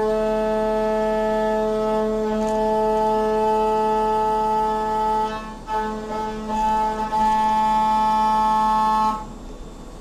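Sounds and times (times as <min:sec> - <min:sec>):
milling machine cutting whine: 0:00.0 - 0:10.0
steady machine noise: 0:00.0 - 0:10.0.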